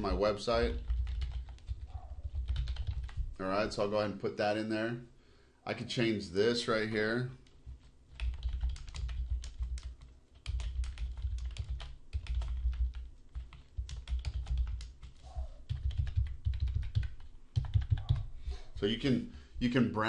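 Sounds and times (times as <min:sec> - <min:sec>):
computer keyboard typing: 0:00.0 - 0:03.3, 0:07.5 - 0:18.3.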